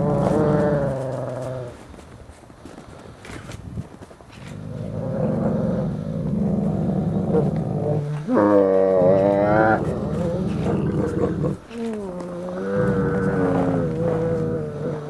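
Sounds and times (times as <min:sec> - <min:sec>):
wolf growling: 0:00.0 - 0:02.0, 0:04.4 - 0:15.0.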